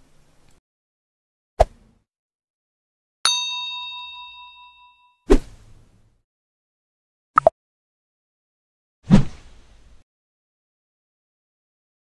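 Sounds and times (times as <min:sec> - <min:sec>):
bell-like ding chime: 0:03.3 - 0:05.2.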